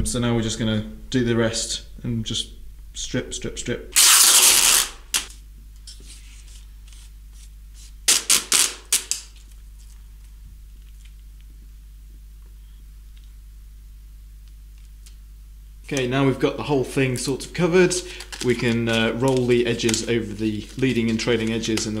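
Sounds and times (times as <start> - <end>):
low room hum: 0.0 - 22.0
packaging tape ripped off roll: 4.0 - 5.4, 6.9 - 9.6.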